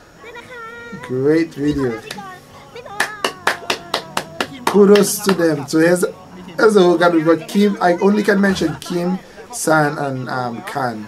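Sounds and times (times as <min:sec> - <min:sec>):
hands clapping: 0:01.7 - 0:02.3, 0:02.9 - 0:05.7.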